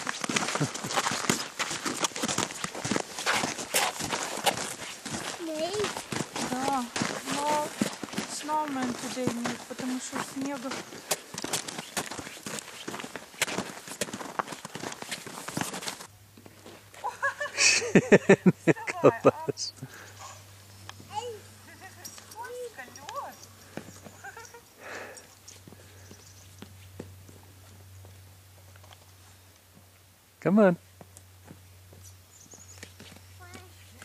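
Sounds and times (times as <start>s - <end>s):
footsteps crunching on snow: 0.0s - 17.4s, 31.0s - 34.0s.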